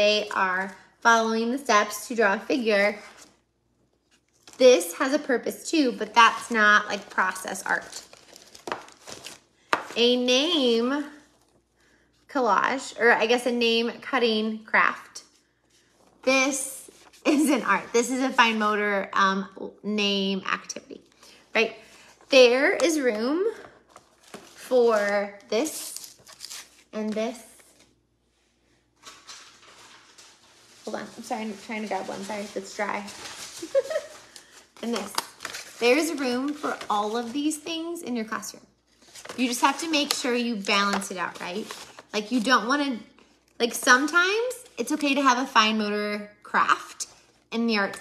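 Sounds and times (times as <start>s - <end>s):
paper rustling: 6.1s - 10.0s, 15.7s - 18.6s, 23.6s - 27.9s, 29.0s - 37.9s, 38.9s - 42.5s.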